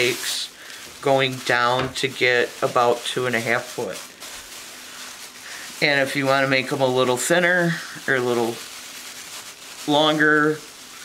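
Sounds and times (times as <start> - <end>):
person speaking: 0.0 - 4.3, 5.4 - 8.7, 9.8 - 10.8
plastic bag strips rustling: 0.0 - 11.0.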